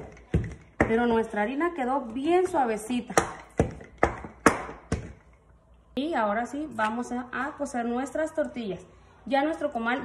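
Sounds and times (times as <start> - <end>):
rolling pin knocking on countertop: 3.2 - 5.2.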